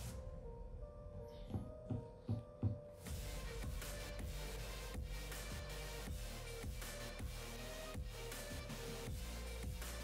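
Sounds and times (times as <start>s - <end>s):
dense background music: 0.0s - 10.0s.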